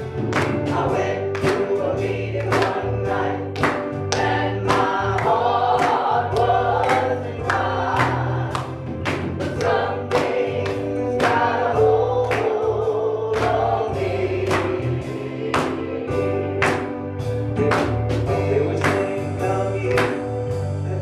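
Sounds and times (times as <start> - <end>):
drum kit beat: 0.0 - 21.0
electric keyboard: 0.0 - 21.0
voices singing: 0.4 - 17.0.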